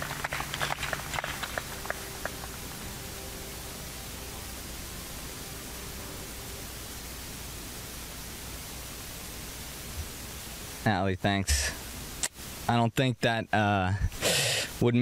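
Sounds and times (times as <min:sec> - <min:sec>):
background hiss: 0:00.0 - 0:15.0
faint steady hum: 0:00.0 - 0:15.0.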